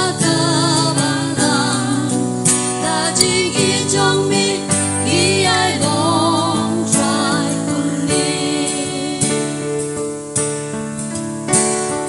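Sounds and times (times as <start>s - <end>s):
women singing a hymn with vibrato: 0.0s - 10.1s
instrumental accompaniment: 0.0s - 12.0s.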